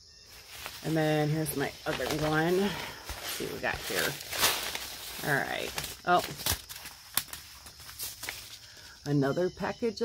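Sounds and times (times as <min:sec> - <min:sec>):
paper packets clicking: 0:00.4 - 0:09.0.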